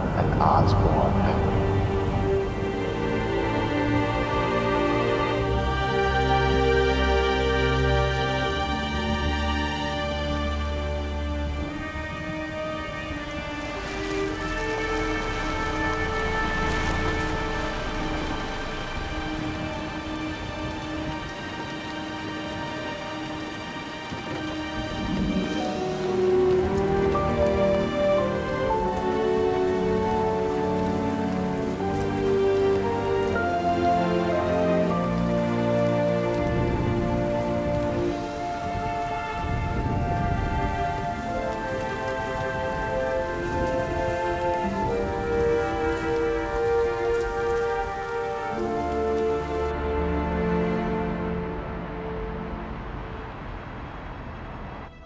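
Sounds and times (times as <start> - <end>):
film score sustained chords: 0.0 - 55.0
rain falling: 0.0 - 55.0.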